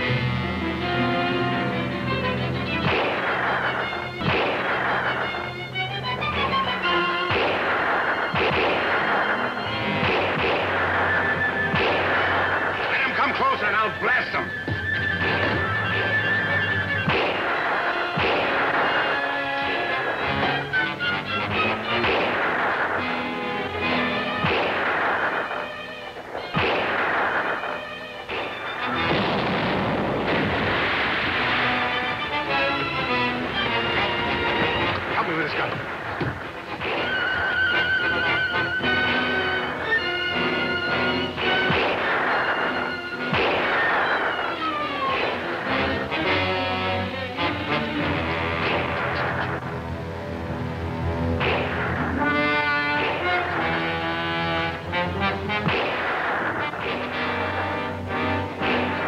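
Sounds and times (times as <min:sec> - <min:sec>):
dramatic orchestral music: 0:00.0 - 0:59.0
rifle shots: 0:02.1 - 0:46.7, 0:48.0 - 0:49.8, 0:51.2 - 0:59.0
cannon booms: 0:02.8 - 0:05.4, 0:07.2 - 0:20.5, 0:26.4 - 0:32.7, 0:33.5 - 0:39.3, 0:41.0 - 0:46.3, 0:51.4 - 0:54.8, 0:55.5 - 0:57.9.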